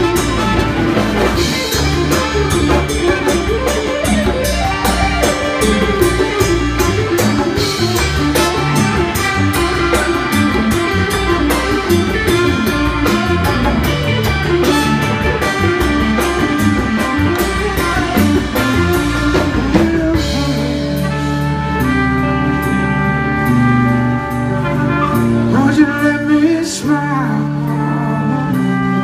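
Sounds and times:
congas: 0:00.0 - 0:21.2
bass guitar: 0:00.0 - 0:29.0
drum kit beat: 0:00.0 - 0:29.0
electric guitar: 0:00.0 - 0:29.0
trumpet: 0:00.0 - 0:29.0.

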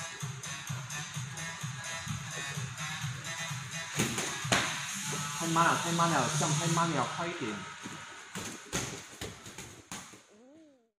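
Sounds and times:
kicks and punches on pads: 0:04.0 - 0:04.8, 0:08.3 - 0:10.1.

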